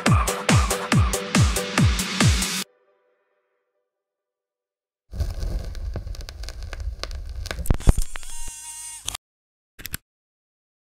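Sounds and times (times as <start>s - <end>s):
electronic dance music: 0.0s - 2.7s
crackling static: 5.1s - 8.5s.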